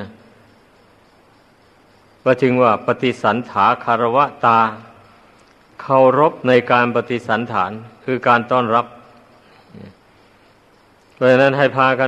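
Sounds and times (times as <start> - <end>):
faint steady hiss: 0.0 - 12.0
man's low throat sound: 9.5 - 10.1.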